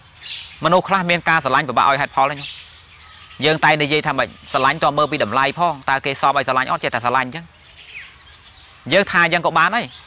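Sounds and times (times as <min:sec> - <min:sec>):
bird chirp: 0:00.0 - 0:10.0
faint outdoor background noise: 0:00.0 - 0:10.0
man speaking into microphone: 0:00.6 - 0:02.5, 0:03.4 - 0:07.5, 0:08.9 - 0:10.0.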